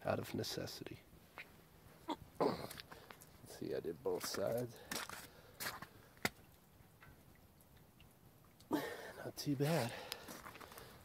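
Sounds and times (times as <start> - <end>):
footsteps on slushy mud: 4.1 - 6.4, 10.1 - 11.0.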